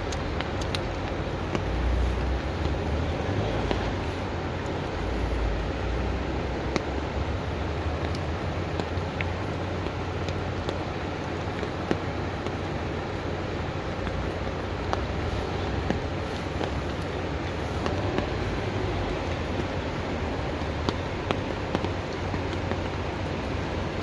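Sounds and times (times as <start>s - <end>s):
floodwater rushing: 0.0s - 24.0s.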